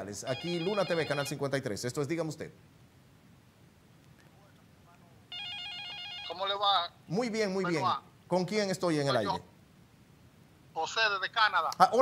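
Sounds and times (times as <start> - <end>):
electronic telephone ringing: 0.3 - 1.4, 5.3 - 6.9.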